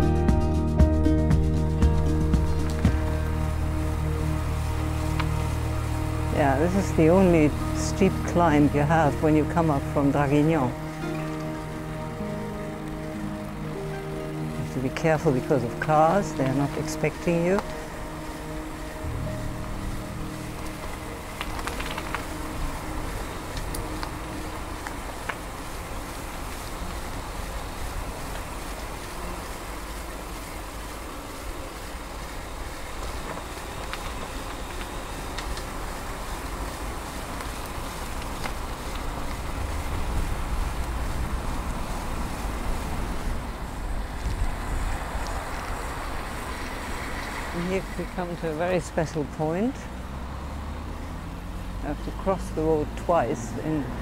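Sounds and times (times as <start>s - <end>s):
road noise: 0.0s - 54.0s
wind rumbling on microphone: 1.8s - 54.0s.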